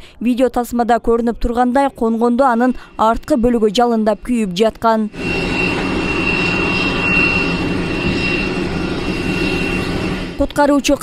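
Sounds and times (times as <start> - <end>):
jet engine noise with high whine: 2.1 - 11.0.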